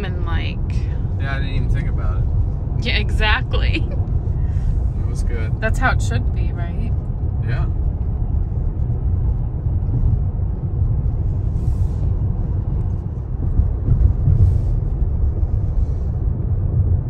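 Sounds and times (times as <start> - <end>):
road and tyre rumble: 0.0 - 17.0.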